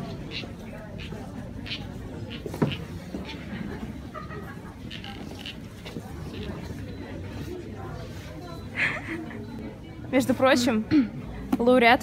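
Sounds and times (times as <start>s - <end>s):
indistinct voices of shoppers: 0.0s - 12.0s.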